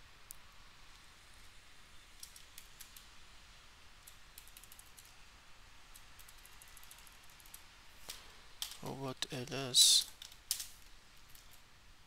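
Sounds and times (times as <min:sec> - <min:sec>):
low steady hiss: 0:00.0 - 0:12.0.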